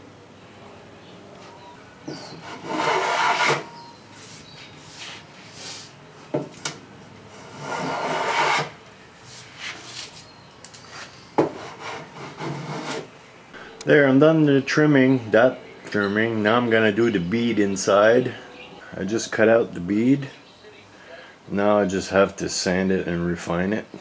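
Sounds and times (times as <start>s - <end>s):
hand tool rasping on wood: 2.4s - 3.6s, 7.5s - 8.7s
tool knocking on wood: 11.4s - 11.6s.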